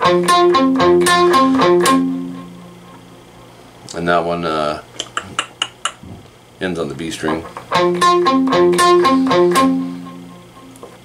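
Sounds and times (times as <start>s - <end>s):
clean electric guitar picking: 0.0s - 3.7s, 7.3s - 11.0s.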